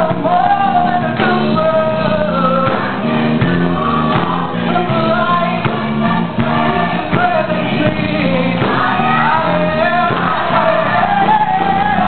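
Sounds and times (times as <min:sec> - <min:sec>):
bass line: 0:00.0 - 0:12.0
gospel choir singing: 0:00.0 - 0:12.0
handclaps on a beat: 0:00.2 - 0:01.8, 0:02.6 - 0:12.0.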